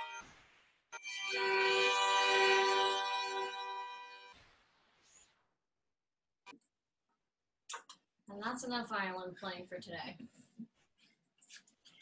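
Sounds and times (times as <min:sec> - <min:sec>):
violins bowing a held chord: 0:01.1 - 0:04.3.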